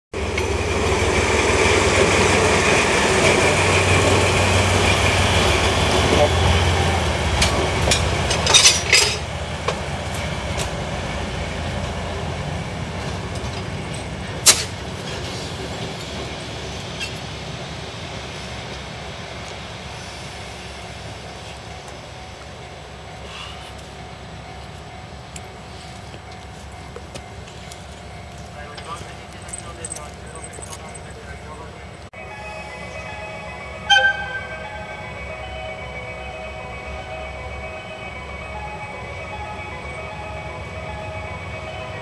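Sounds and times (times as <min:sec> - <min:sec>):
wheels clacking on track: 0:00.1 - 0:32.1
diesel locomotive engine: 0:00.1 - 0:42.0.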